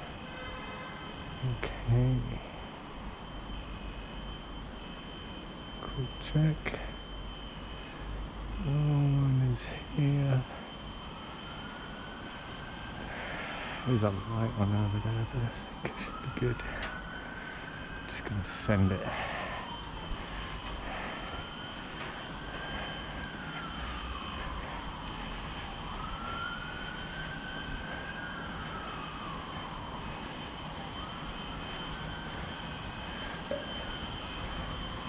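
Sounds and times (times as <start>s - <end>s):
siren wailing up and down: 0.0s - 35.0s
thin steady high tone: 0.0s - 35.0s
steady low rumble: 19.0s - 35.0s.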